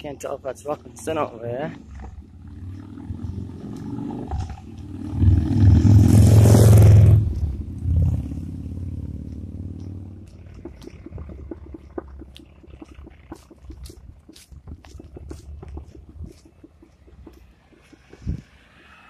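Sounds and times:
motorcycle engine passing: 1.5s - 14.1s.

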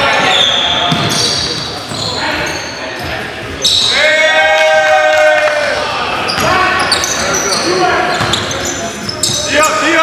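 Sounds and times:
sneakers squeaking: 0.0s - 4.0s, 6.2s - 10.0s
voices echoing: 0.0s - 10.0s
sharp high squeak: 0.2s - 2.9s, 3.6s - 4.0s, 6.3s - 9.8s.

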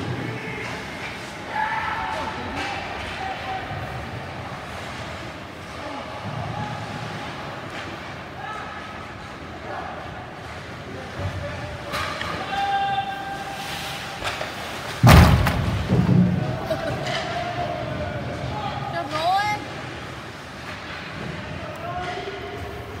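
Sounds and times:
people shouting: 1.4s - 3.9s, 12.3s - 13.6s
slam against rink boards: 14.2s - 17.3s.

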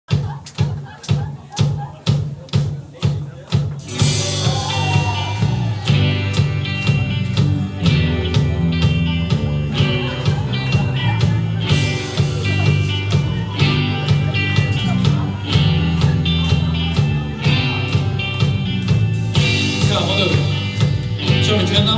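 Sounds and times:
rock band playing: 0.1s - 21.9s
steady drum beat: 0.1s - 21.9s
electric guitar: 3.8s - 21.9s.

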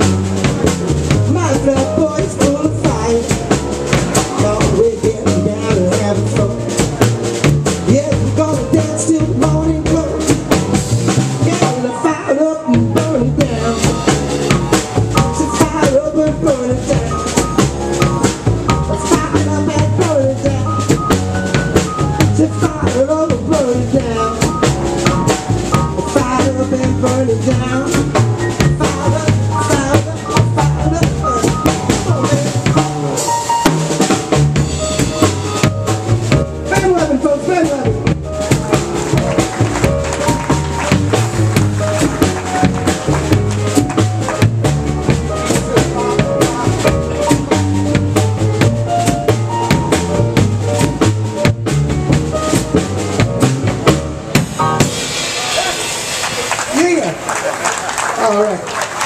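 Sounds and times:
upright bass: 0.0s - 57.5s
drum kit beat: 0.0s - 58.0s
electric stage piano: 0.0s - 59.0s
audience applause: 38.5s - 44.8s, 55.2s - 59.0s.

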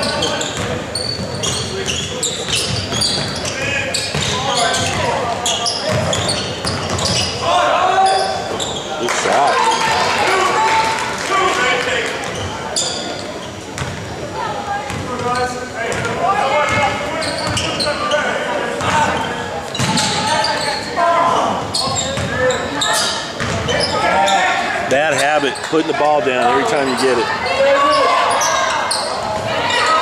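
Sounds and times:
spectators talking and calling: 0.0s - 30.0s.

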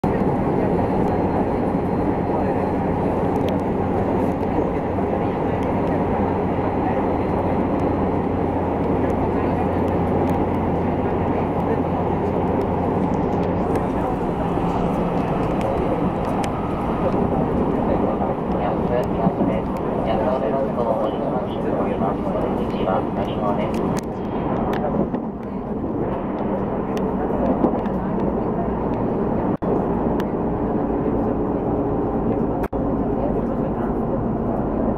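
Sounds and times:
low hum: 0.0s - 34.9s
train wheels rumbling on rail: 0.0s - 34.9s.

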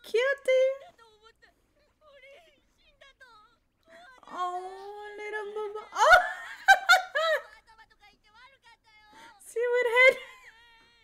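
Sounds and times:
woman laughing: 5.2s - 7.7s.

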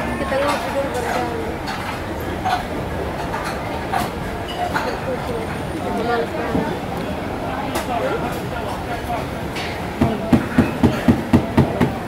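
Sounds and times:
people's voices: 0.0s - 12.0s.

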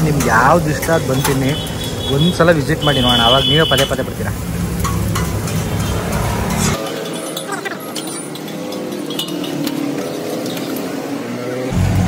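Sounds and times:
eggs frying hiss: 0.0s - 11.3s
spatulas scraping iron griddles: 4.7s - 11.4s.

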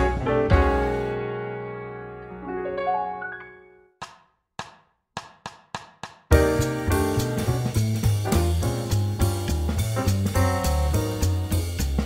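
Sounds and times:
band playing: 6.3s - 12.0s.

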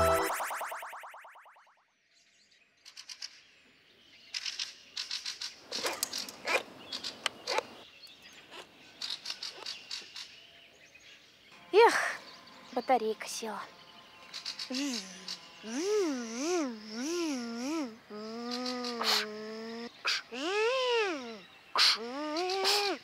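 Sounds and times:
birds chirping: 3.5s - 23.0s.

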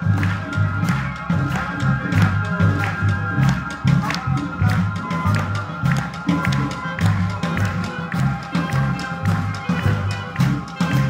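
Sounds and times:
electric bass line: 0.0s - 11.0s
wind ensemble playing: 0.0s - 11.0s.

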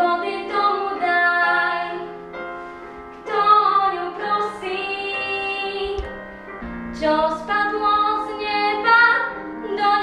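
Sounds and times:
piano accompaniment: 0.0s - 10.0s
young woman singing slow song: 3.2s - 6.2s, 6.9s - 10.0s.

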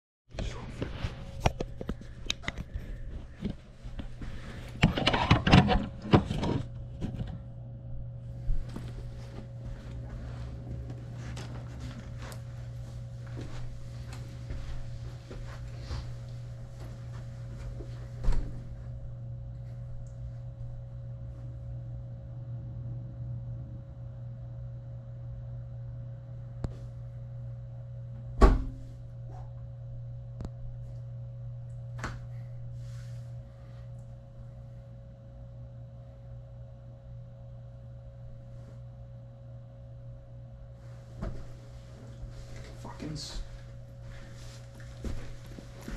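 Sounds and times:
steady low hum: 0.3s - 45.9s
loud dull thump: 28.4s - 28.9s.

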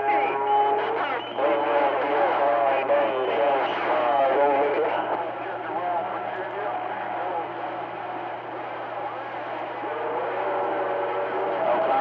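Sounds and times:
low radio hum: 0.0s - 12.0s
muffled voices over radio: 0.0s - 12.0s.

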